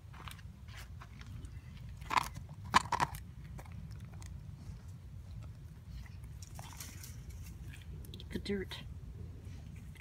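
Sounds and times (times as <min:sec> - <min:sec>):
dog gnawing at dirt: 0:00.1 - 0:08.3.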